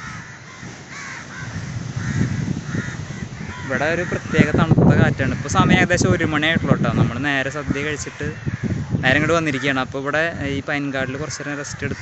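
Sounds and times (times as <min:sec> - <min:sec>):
crows cawing: 0:00.0 - 0:12.0
wind rumble on microphone: 0:00.0 - 0:12.0.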